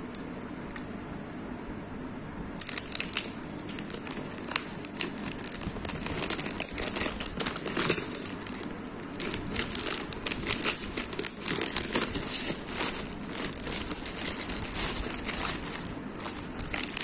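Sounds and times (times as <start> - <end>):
plastic packaging crinkling: 2.7 - 17.0.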